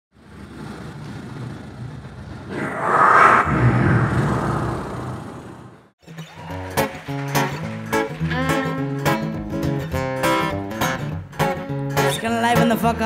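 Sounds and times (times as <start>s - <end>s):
rumbling whoosh: 2.5s - 5.9s.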